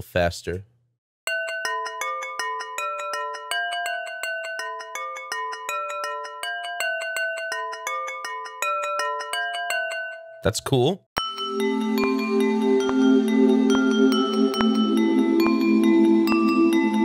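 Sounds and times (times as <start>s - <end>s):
glassy bell-like notes with echo: 1.3s - 10.4s, 11.2s - 17.0s.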